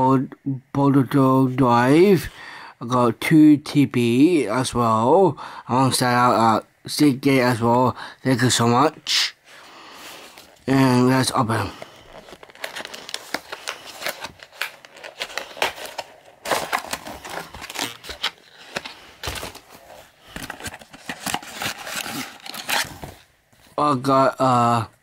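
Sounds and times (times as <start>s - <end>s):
packaging crinkling and tearing: 11.6s - 23.3s.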